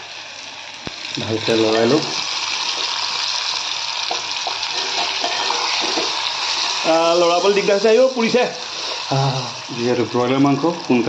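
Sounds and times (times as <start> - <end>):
chicken sizzling in hot oil: 0.0 - 11.0.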